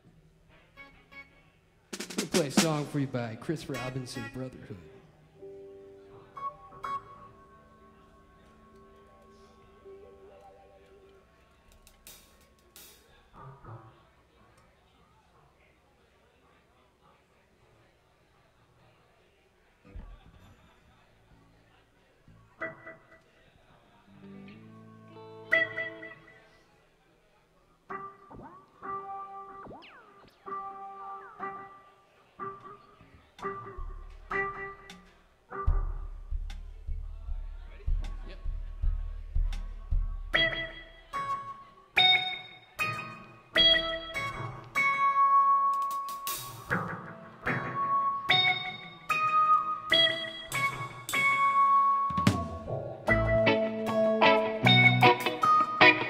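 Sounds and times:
electric guitar being tuned: 24.2 - 26.3, 40.3 - 56.0.

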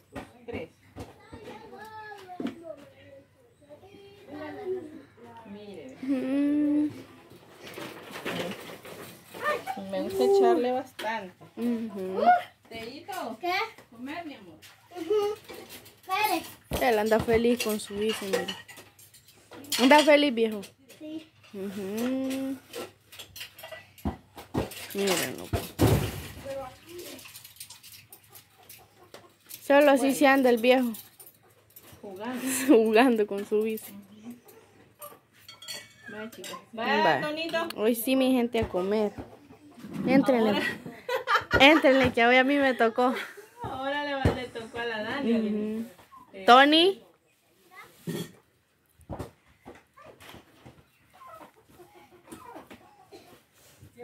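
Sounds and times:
spoon clinking against dishes: 35.4 - 36.7.

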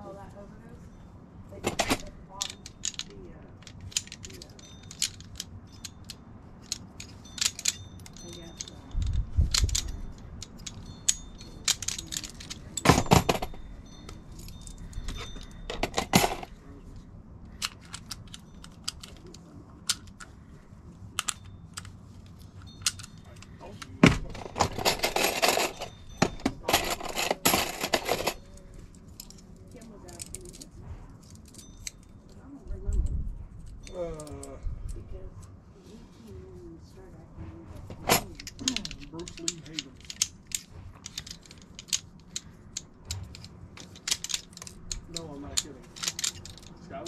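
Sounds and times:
metal tool parts clinking: 1.5 - 35.1, 37.8 - 47.0.

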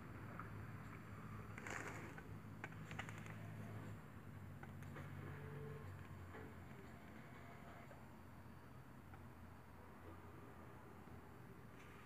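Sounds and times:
distant helicopters droning: 0.0 - 12.0.

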